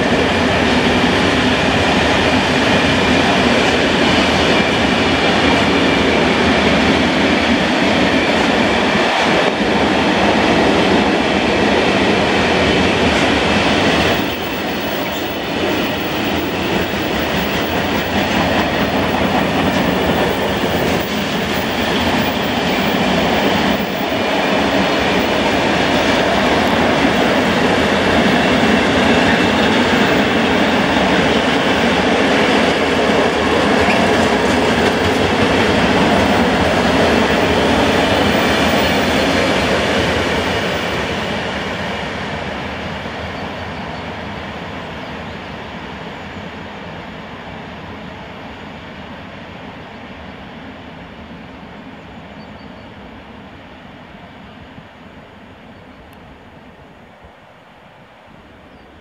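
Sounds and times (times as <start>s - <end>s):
train wheels rumbling and clattering: 0.0s - 56.8s.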